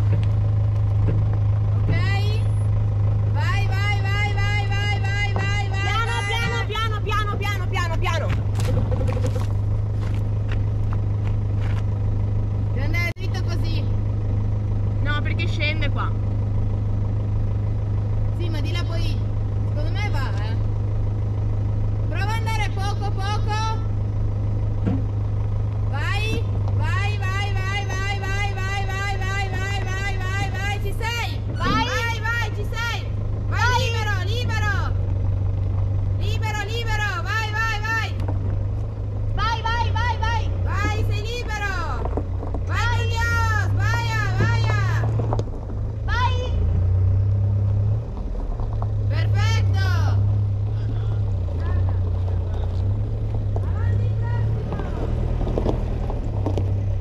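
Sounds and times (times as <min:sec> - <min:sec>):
engine droning: 0:00.0 - 0:57.0.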